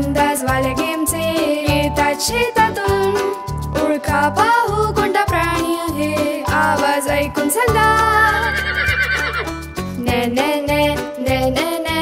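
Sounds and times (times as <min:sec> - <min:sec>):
bouncy children's music: 0:00.0 - 0:12.0
horse whinnying: 0:08.3 - 0:09.6.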